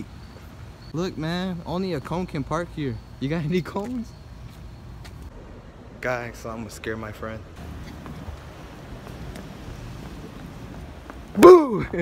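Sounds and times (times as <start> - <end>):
street noise rumble: 0.0 - 12.0.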